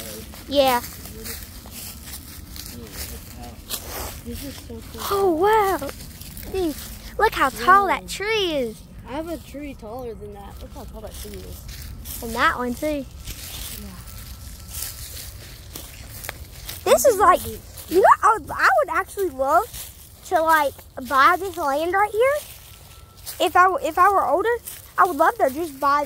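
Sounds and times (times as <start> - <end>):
faint voices talking: 0.0 - 26.0
footsteps in dry leaves: 0.0 - 26.0.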